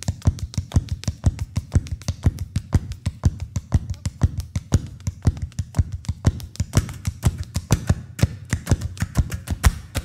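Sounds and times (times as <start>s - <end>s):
shoes tapping wooden board: 0.0s - 10.0s.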